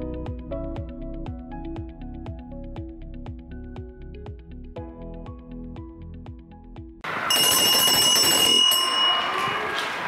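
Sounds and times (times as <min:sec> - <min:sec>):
background music: 0:00.0 - 0:07.1
loud bell ringing: 0:07.0 - 0:10.0.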